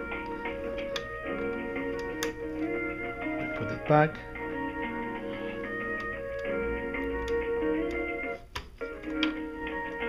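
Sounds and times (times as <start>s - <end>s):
hold music through phone speaker: 0.0s - 10.0s.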